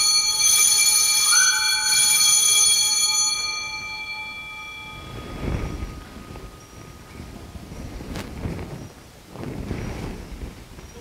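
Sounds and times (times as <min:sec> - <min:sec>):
altar bells ringing: 0:00.0 - 0:07.9.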